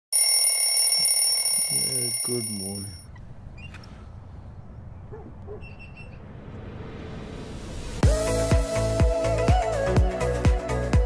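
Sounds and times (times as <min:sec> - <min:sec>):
electronic alarm tone: 0:00.1 - 0:03.1.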